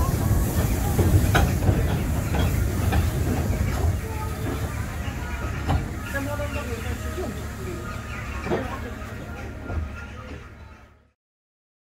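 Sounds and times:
wheels clicking over rail joints: 0.0s - 6.3s
train rumbling on track: 0.0s - 11.1s.

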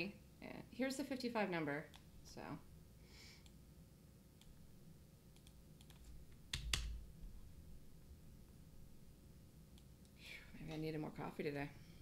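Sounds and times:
computer keys clicking: 5.3s - 7.0s.

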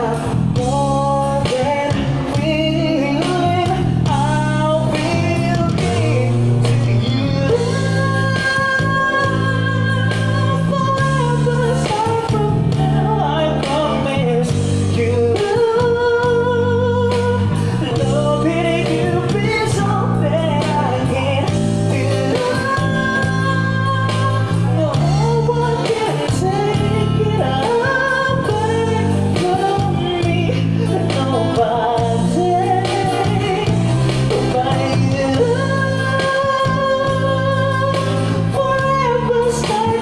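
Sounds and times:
acoustic guitar: 0.0s - 40.0s
low bass notes: 0.0s - 40.0s
person singing: 0.0s - 40.0s.

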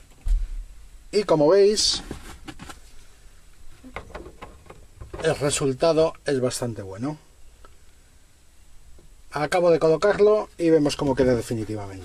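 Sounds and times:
light handling noise: 1.9s - 5.7s.

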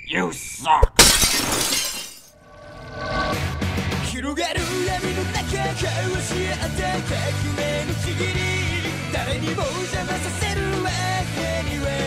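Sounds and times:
glass shattering: 1.0s - 2.4s
music: 3.1s - 12.0s.

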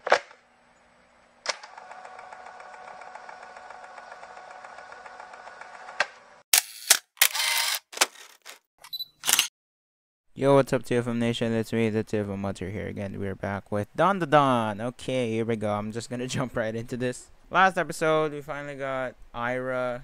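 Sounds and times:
camera shutter clicks and swishes: 6.5s - 9.5s.

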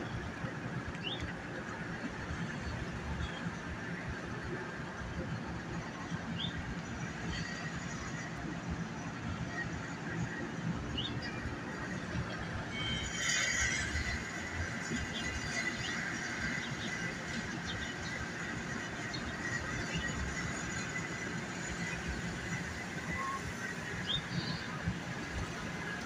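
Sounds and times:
city street traffic rumble: 0.0s - 26.0s.

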